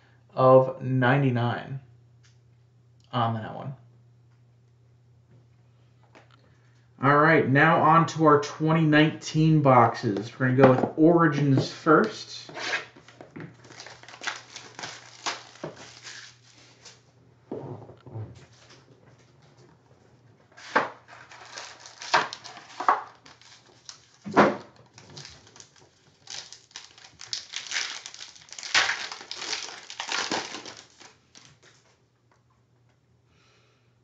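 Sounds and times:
plastic and foil wrappers crinkling: 13.6s - 17.0s, 20.6s - 32.0s.

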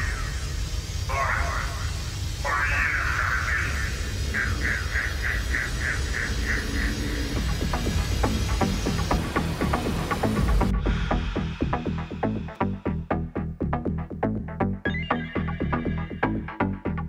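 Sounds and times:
pulsing high synth tone: 2.5s - 10.8s, 14.8s - 16.9s
steady low bass: 5.5s - 17.0s.

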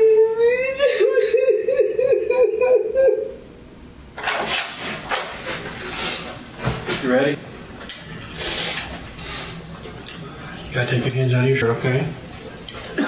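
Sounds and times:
short wavering voice: 2.0s - 3.4s.

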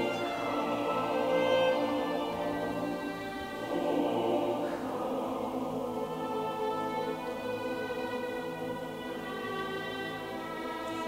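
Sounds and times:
mixed choir singing: 0.0s - 11.0s
violins: 0.0s - 11.0s.

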